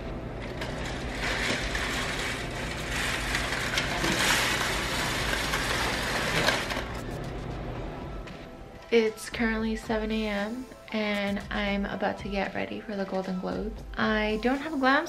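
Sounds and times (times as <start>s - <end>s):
blind carriers rattling: 0.4s - 7.0s
window blind slats clattering: 0.4s - 7.0s.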